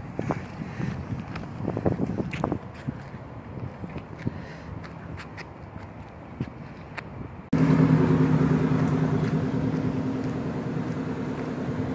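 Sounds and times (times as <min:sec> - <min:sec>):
engine running loud: 0:07.6 - 0:11.9.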